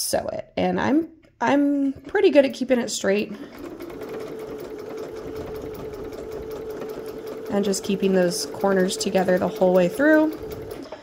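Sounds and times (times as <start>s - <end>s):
sewing machine stitching: 1.9s - 11.0s.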